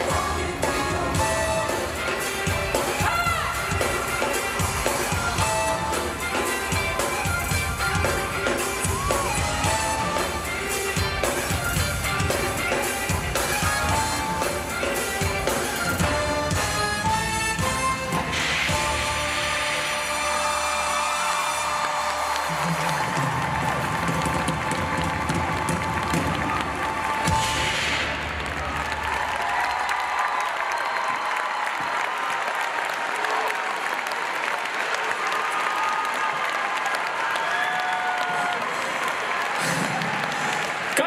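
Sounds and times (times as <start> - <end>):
live band music with strong bass: 0.0 - 29.0
audience applauding and cheering: 0.0 - 41.0.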